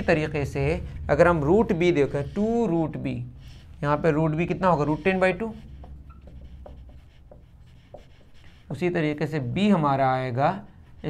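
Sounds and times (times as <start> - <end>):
marker pen writing on whiteboard: 0.0 - 0.8, 1.4 - 11.0
faint marker squeaks: 4.5 - 9.4.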